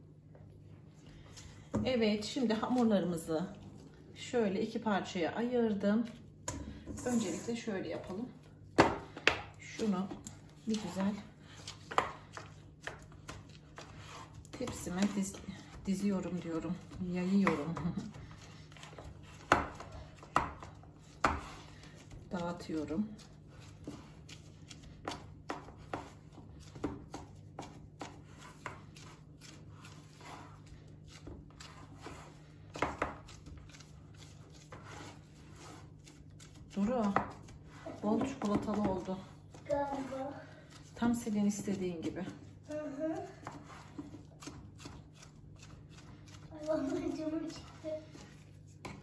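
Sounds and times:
hands pressing soft dough: 0:05.4 - 0:49.0.

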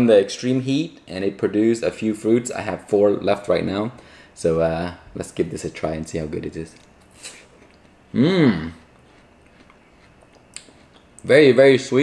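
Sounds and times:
person chewing crunchy melon: 0:06.8 - 0:11.3.

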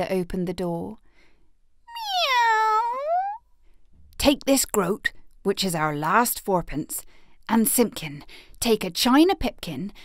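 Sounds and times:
cat meowing: 0:01.9 - 0:03.4.

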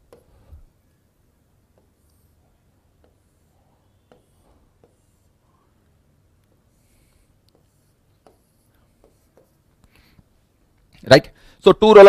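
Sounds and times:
pen tapping on touchscreen: 0:00.0 - 0:00.3, 0:01.7 - 0:02.2, 0:02.9 - 0:03.4, 0:04.0 - 0:05.3, 0:06.4 - 0:10.0.

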